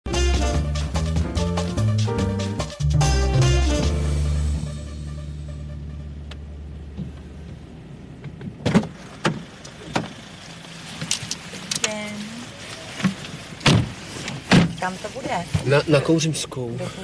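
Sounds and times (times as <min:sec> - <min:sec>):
jingle low note: 0:00.1 - 0:06.9
street background noise: 0:03.4 - 0:17.0
car door knocks and clunks: 0:13.6 - 0:14.8.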